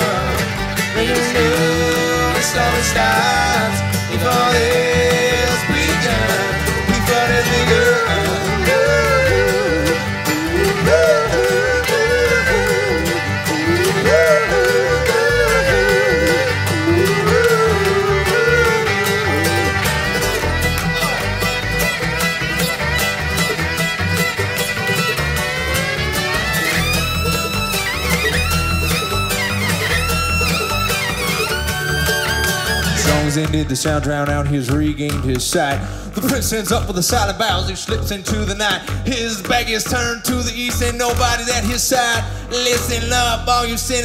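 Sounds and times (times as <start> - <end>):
fiddle lead melody: 0.0 - 34.8
acoustic guitar: 0.0 - 44.0
banjo: 0.0 - 44.0
mandolin: 0.0 - 44.0
upright bass: 0.0 - 44.0.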